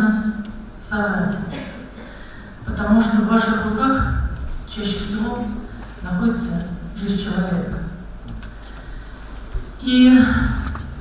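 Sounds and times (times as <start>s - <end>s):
woman speaking into a microphone: 0.0s - 1.9s, 2.6s - 8.0s, 9.8s - 10.8s
low room hum: 0.0s - 11.0s.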